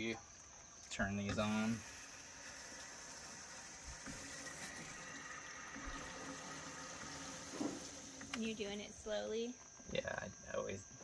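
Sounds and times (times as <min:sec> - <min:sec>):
water hissing through pipes: 0:01.0 - 0:09.0.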